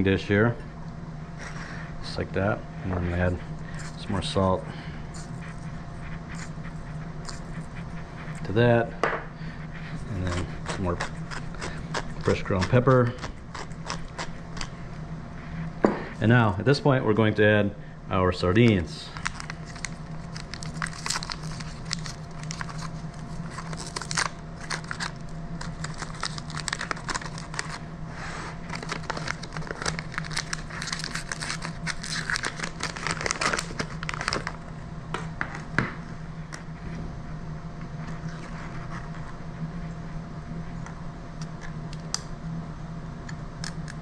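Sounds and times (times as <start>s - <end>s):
paper wrapper crinkling and tearing: 19.1s - 27.8s, 28.6s - 34.6s.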